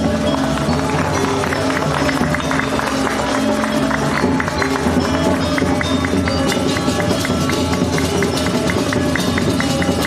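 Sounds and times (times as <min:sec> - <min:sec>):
drums: 0:00.0 - 0:10.0
gamelan ensemble playing: 0:00.0 - 0:10.0
metallophones ringing: 0:00.0 - 0:10.0.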